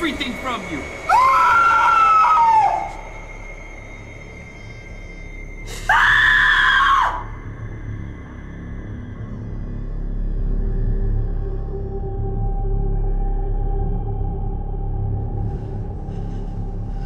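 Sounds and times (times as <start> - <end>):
low music bed: 0.0 - 6.0, 6.8 - 17.0
woman screaming: 1.1 - 3.0, 5.9 - 7.4.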